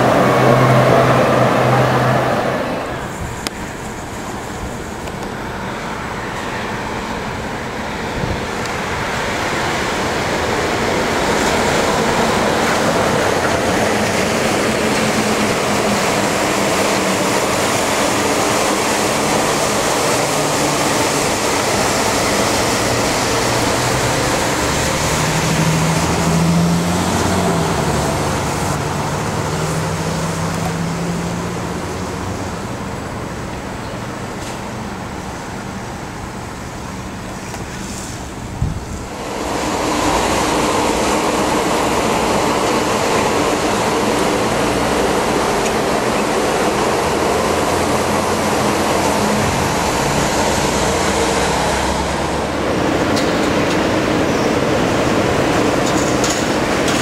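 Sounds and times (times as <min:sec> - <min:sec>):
rubber tyres rushing on beam: 0:00.0 - 0:57.0.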